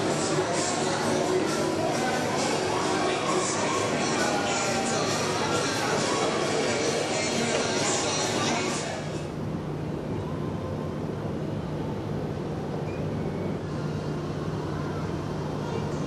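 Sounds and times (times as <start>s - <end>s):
faint voices: 0.0s - 16.0s.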